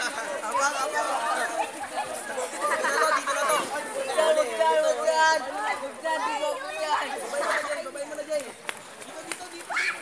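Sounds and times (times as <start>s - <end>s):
young people chattering: 0.0s - 10.0s.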